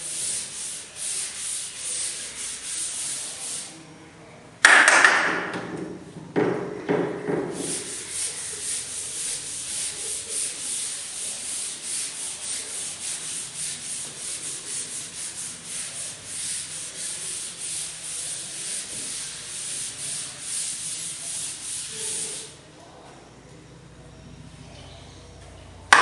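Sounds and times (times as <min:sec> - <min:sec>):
duster rubbing on chalkboard: 0:00.0 - 0:03.8, 0:06.7 - 0:22.6.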